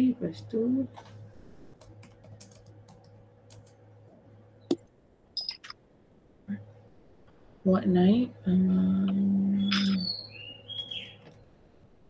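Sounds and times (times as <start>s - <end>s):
bird chirping: 5.4s - 5.7s, 9.5s - 11.4s.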